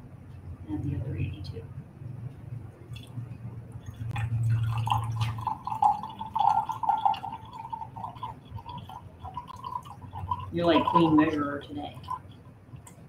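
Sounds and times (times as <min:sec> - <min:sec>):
water pouring into a glass: 0:03.8 - 0:12.4.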